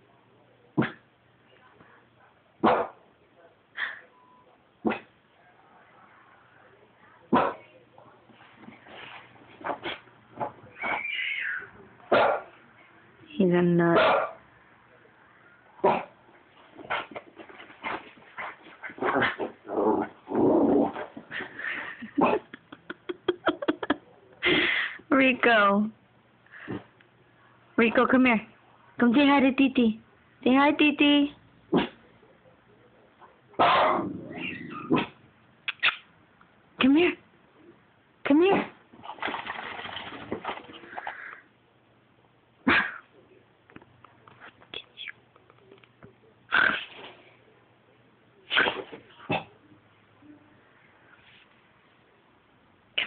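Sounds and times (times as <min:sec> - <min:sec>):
dog whining: 0:10.7 - 0:11.7
dog yipping: 0:10.8 - 0:12.4.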